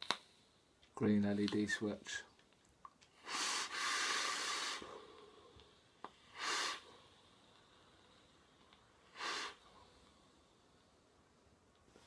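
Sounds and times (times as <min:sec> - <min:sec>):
vape inhale hiss: 0:03.1 - 0:08.4, 0:09.0 - 0:10.2.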